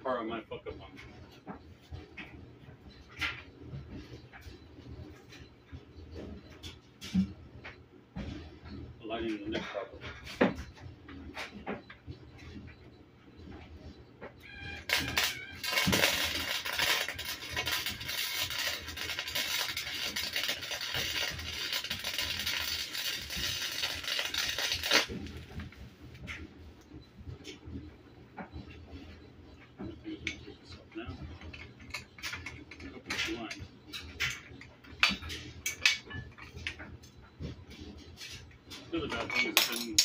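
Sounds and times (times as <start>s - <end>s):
arc welding crackle: 14.8s - 25.7s.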